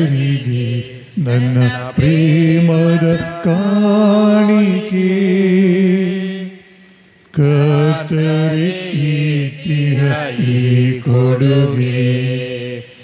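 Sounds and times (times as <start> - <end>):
man singing a hymn: 0.0 - 6.7, 7.3 - 13.0.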